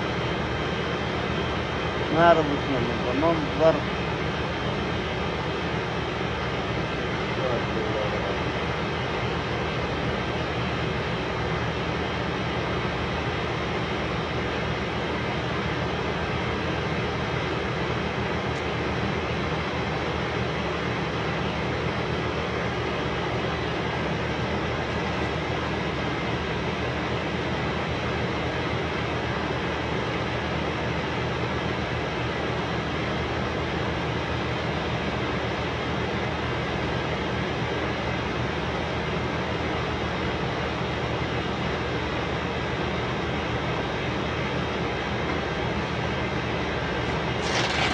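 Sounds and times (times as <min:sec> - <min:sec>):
loud mechanical drone: 0:00.0 - 0:20.4, 0:47.1 - 0:47.9.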